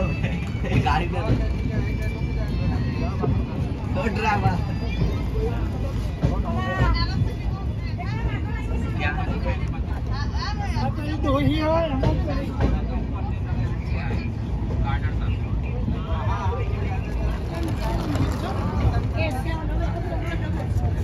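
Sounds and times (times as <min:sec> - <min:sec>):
passengers chattering: 0:00.0 - 0:21.0.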